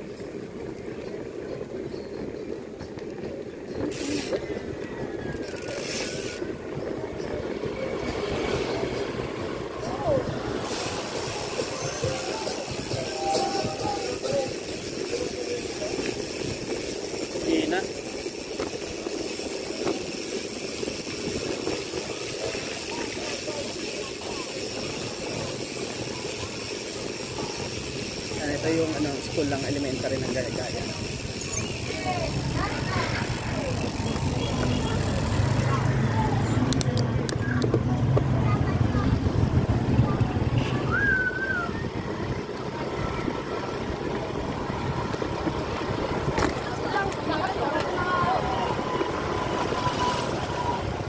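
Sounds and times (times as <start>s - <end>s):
bicycle tyre rumble on road: 0.0s - 51.0s
faint voices: 0.0s - 51.0s
wind on microphone: 6.1s - 17.4s, 35.9s - 47.3s.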